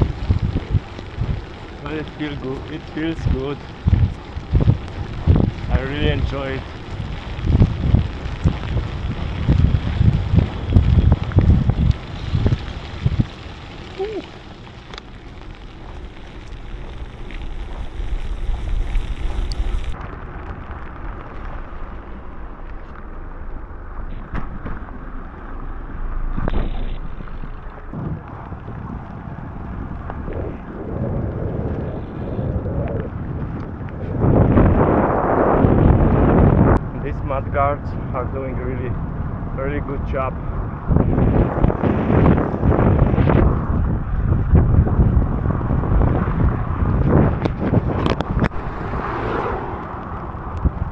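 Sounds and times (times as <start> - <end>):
rush of noise: 0.0 - 50.9
wind buffeting microphone: 0.0 - 50.9.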